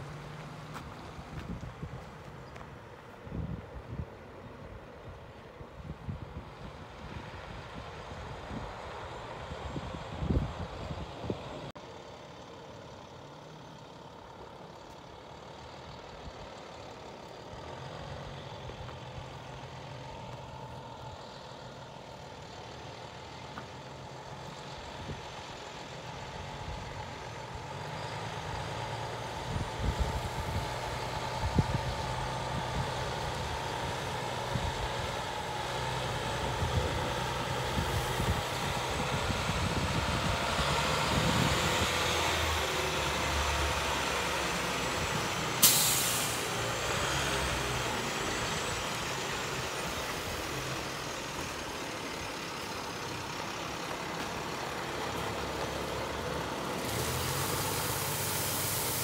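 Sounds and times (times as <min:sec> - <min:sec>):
diesel truck engine passing: 0:00.0 - 0:02.5, 0:06.1 - 0:59.0
air brake hiss: 0:45.6 - 0:46.7, 0:56.8 - 0:59.0.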